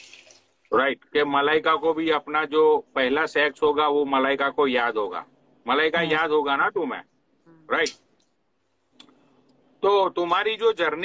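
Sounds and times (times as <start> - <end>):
man talking: 0.7 - 8.0, 9.8 - 11.0.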